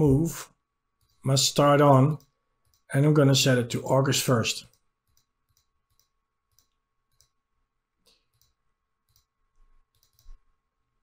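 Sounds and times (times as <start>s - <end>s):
computer mouse clicks: 4.6s - 7.4s, 8.0s - 10.5s.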